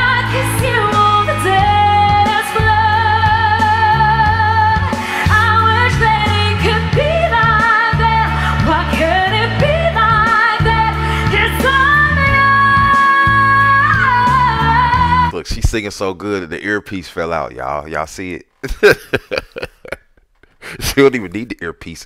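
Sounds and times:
woman singing pop: 0:00.0 - 0:15.3.

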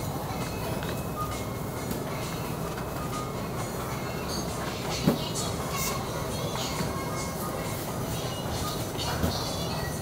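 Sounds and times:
supermarket background rumble: 0:00.0 - 0:10.0.

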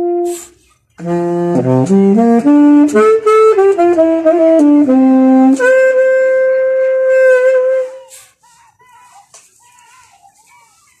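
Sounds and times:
tenor saxophone long note: 0:00.0 - 0:00.4, 0:01.0 - 0:08.0.

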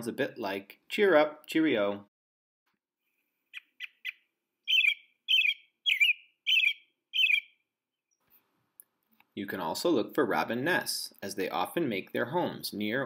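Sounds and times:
robin singing: 0:03.5 - 0:07.7.

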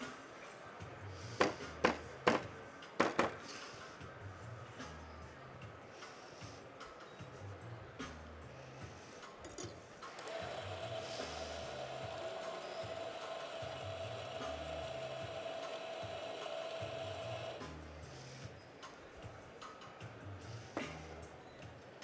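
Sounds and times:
coffee grinder whining: 0:10.2 - 0:17.6.

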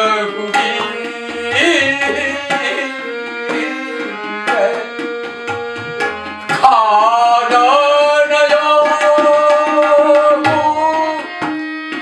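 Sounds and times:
man singing: 0:00.0 - 0:05.1, 0:06.4 - 0:11.5
harmonium drone: 0:00.0 - 0:12.0
tabla strokes: 0:00.5 - 0:07.0.

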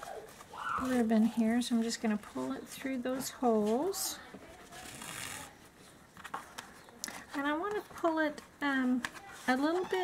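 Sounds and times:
woman's voice: 0:00.8 - 0:04.4
soft clicks and rustles: 0:05.8 - 0:10.0.

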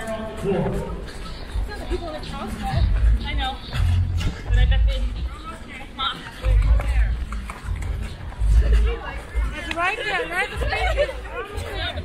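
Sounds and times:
faint crowd voices: 0:00.0 - 0:12.0
footsteps of runners: 0:00.0 - 0:12.0.

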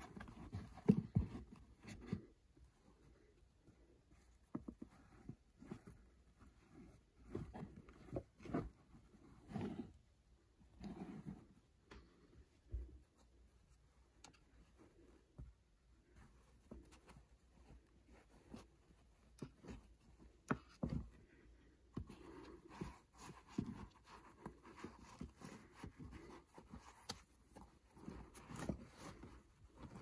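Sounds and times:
cap fabric rubbing and brushing: 0:00.0 - 0:30.0.

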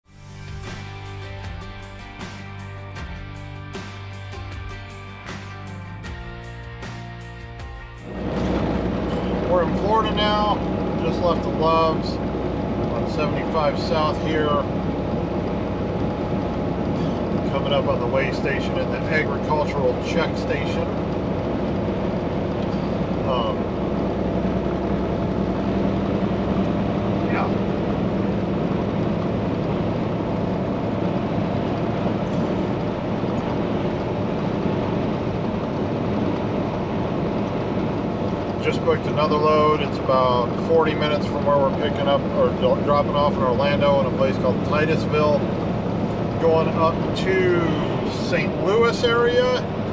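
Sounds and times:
intro music: 0:00.0 - 0:14.0
truck engine and road noise: 0:00.0 - 0:49.9
man talking: 0:09.3 - 0:12.2, 0:12.9 - 0:14.7, 0:17.5 - 0:21.0, 0:23.2 - 0:23.6, 0:27.3 - 0:27.6, 0:38.6 - 0:45.5, 0:46.4 - 0:49.7.

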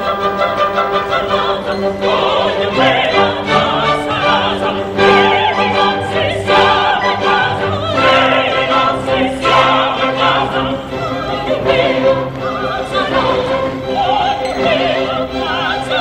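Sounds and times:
operatic voices singing: 0:00.0 - 0:16.0
orchestra playing: 0:00.0 - 0:16.0.

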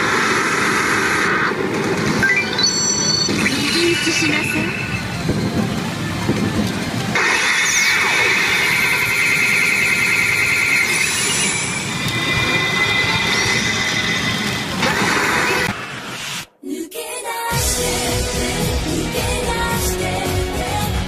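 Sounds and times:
dense wash of noise: 0:00.0 - 0:02.4, 0:03.4 - 0:16.5
shrill warbling electronic tone: 0:02.2 - 0:05.4, 0:07.2 - 0:15.7.

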